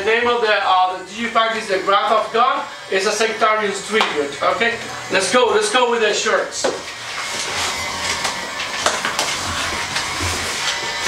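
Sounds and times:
cardboard box scraping and rustling: 0:07.1 - 0:11.0.

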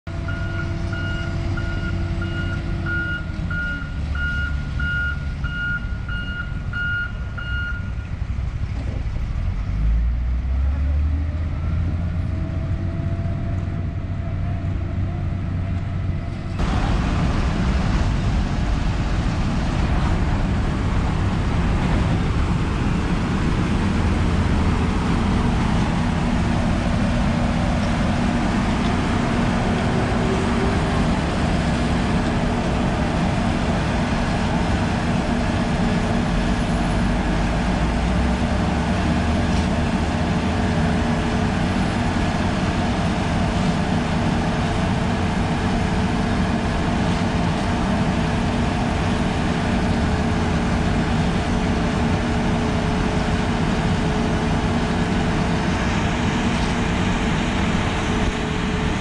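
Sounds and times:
diesel construction machinery running: 0:00.1 - 0:59.0
reversing alarm beeping: 0:00.2 - 0:08.1.

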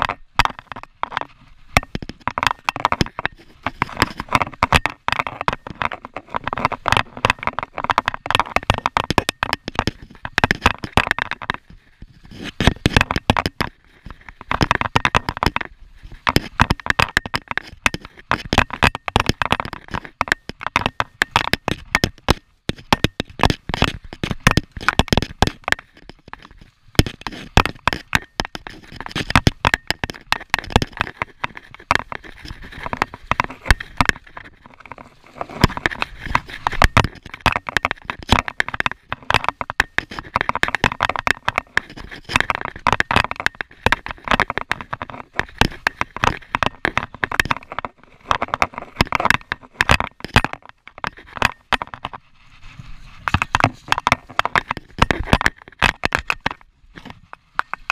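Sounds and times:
tyres crackling over ground: 0:00.0 - 0:57.9.

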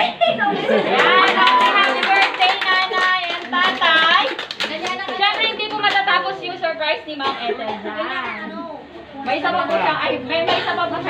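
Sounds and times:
excited voices: 0:00.0 - 0:06.3
group clapping: 0:00.7 - 0:06.4.

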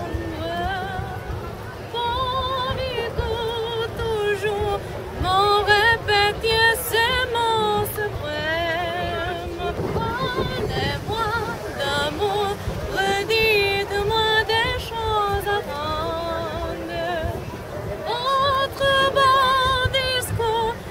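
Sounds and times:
woman singing with vibrato: 0:00.0 - 0:20.9.

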